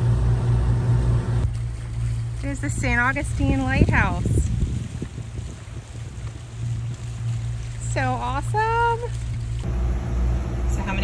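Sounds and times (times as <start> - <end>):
boat engine droning: 0.0 - 11.0
hiss of wind and water: 0.0 - 11.0.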